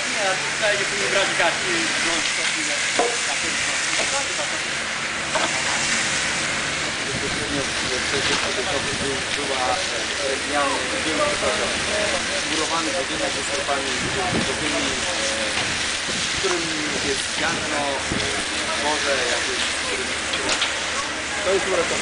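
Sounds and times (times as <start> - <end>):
embers sizzling: 0.0 - 22.0
hose water spray hissing: 0.0 - 22.0
voices talking: 0.0 - 22.0.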